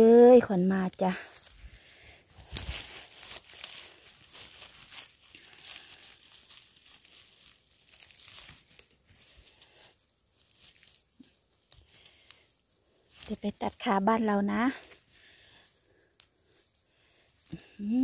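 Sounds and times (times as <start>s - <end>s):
rustling and crackling forest litter: 0.0s - 18.0s.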